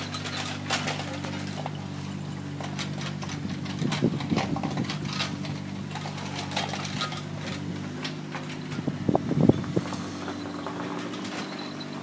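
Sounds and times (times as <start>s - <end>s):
low mechanical hum: 0.0s - 12.0s.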